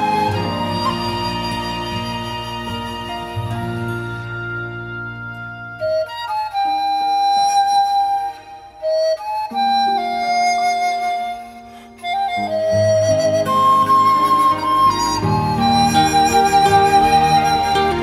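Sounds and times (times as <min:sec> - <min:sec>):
bamboo flute melody: 0:00.0 - 0:18.0.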